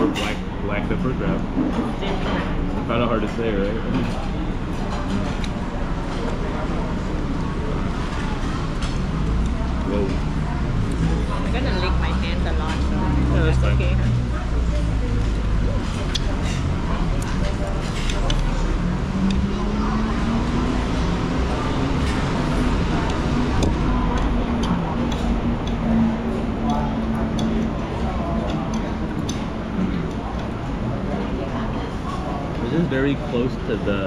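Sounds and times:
engine-like hum: 0.0s - 34.0s
low traffic rumble: 0.0s - 34.0s
murmured voices: 0.0s - 34.0s.

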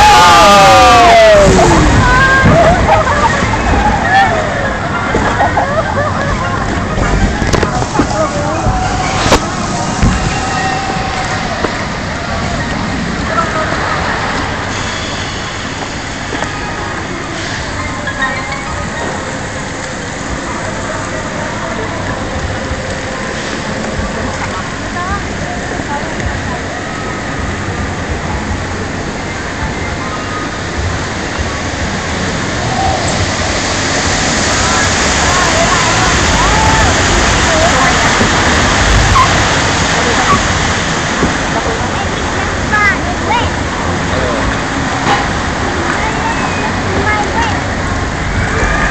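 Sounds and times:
water rushing and splashing: 0.0s - 48.9s.

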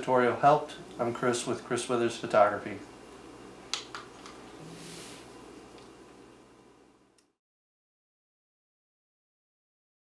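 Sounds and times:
low room hum: 0.0s - 7.4s
soft hiss: 0.0s - 7.4s.

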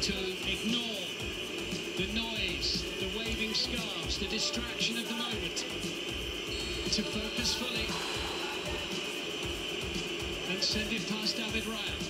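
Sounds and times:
stadium crowd din: 0.0s - 12.0s.

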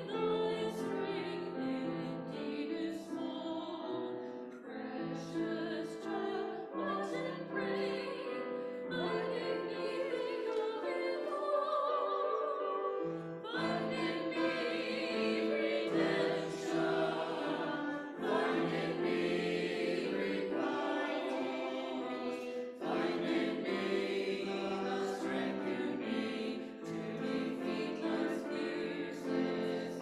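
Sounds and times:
choir singing in parts: 0.0s - 30.0s.

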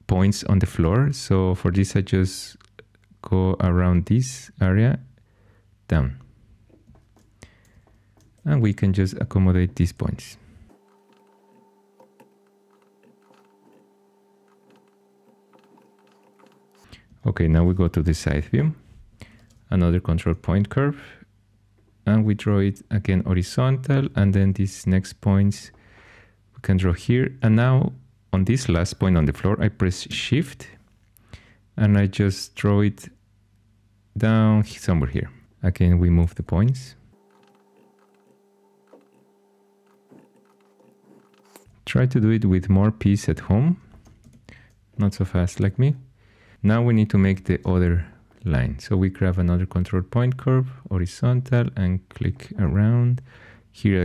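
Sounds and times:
faint electrical hum: 0.0s - 54.0s.

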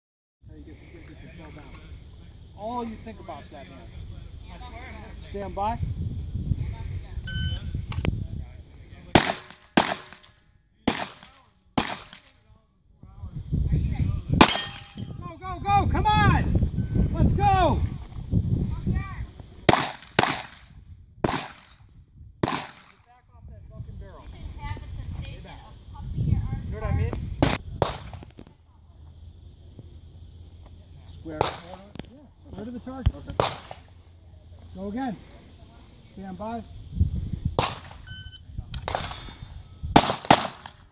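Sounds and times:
shot timer beep: 7.3s - 7.8s, 38.0s - 38.5s
handgun shots: 9.2s - 10.3s, 10.9s - 12.3s, 19.7s - 20.6s, 22.4s - 23.0s, 33.4s - 33.8s, 40.0s - 40.8s.

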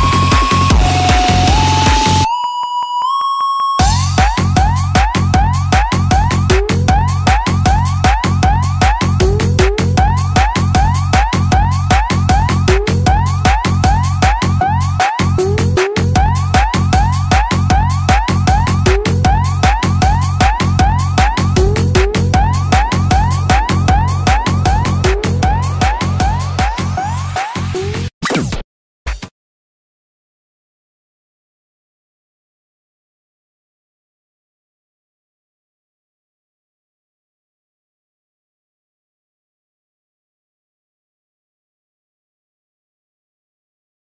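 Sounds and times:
dance music beat and bass: 0.0s - 2.3s, 3.8s - 28.1s
siren-like rising sweeps: 0.0s - 6.3s.

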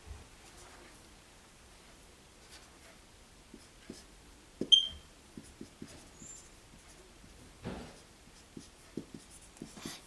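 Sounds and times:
marker writing on whiteboard: 2.4s - 10.0s.

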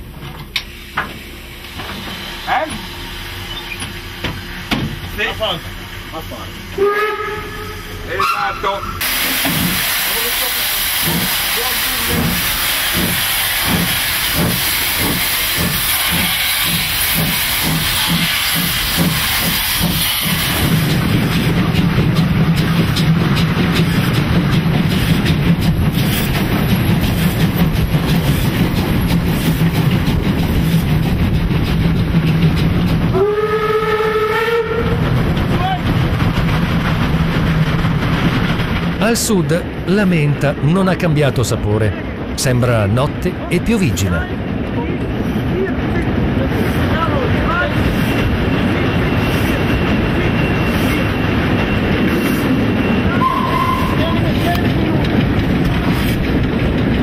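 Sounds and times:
steam locomotive chugging: 0.0s - 57.0s
train running rumble: 0.0s - 57.0s
steam whistle blast: 6.8s - 9.1s, 33.2s - 35.0s, 53.1s - 54.0s.

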